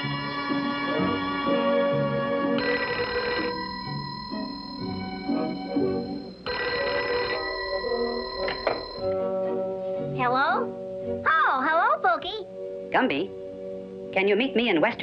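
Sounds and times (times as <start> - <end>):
background music: 0.0 - 15.0
telephone bell ringing: 2.6 - 9.2.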